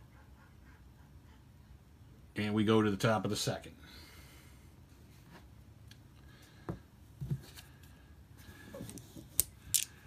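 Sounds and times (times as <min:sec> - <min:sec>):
sharp clicks of game pieces: 0:09.3 - 0:10.0.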